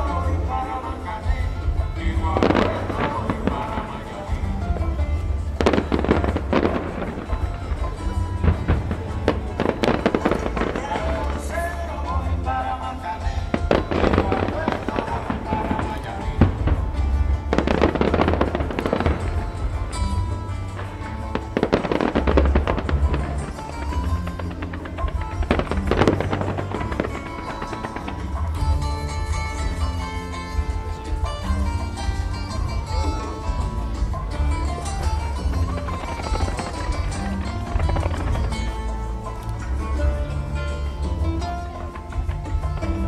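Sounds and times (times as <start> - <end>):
fireworks bursting: 0.0 - 43.0
loud music with heavy bass: 0.0 - 43.0.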